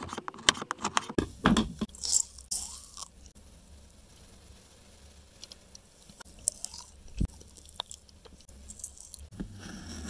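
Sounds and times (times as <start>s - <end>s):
candy bar crunching: 6.3s - 9.3s.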